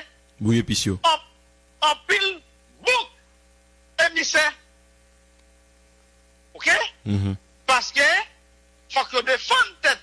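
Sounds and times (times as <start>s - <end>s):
faint mains hum: 0.0s - 10.0s
man speaking short word: 7.1s - 7.4s.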